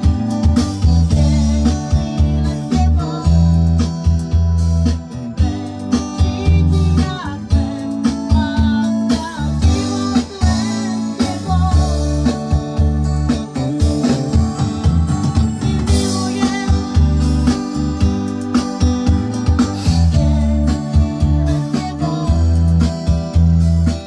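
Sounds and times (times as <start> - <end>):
bending guitar melody: 0.0 - 24.0
pop band playing: 0.0 - 24.0.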